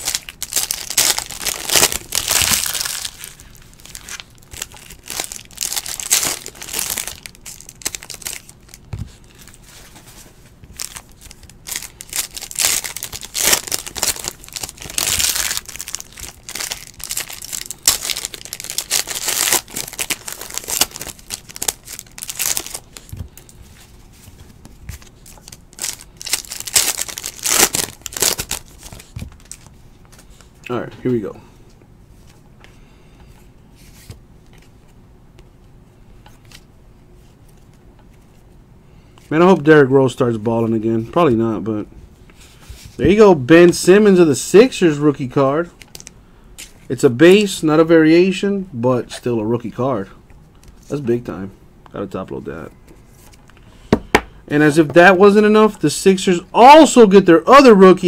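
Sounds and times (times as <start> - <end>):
foil wrappers crinkling and tearing: 0.0 - 9.6, 10.7 - 23.5, 24.9 - 29.7, 45.8 - 46.1.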